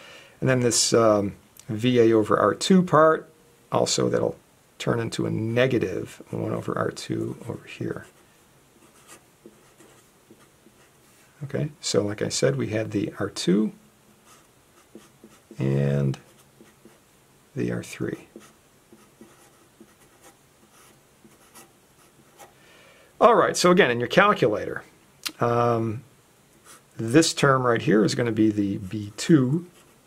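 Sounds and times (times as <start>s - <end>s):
marker scratching on paper: 8.8s - 10.9s, 14.2s - 17.0s, 18.3s - 22.5s.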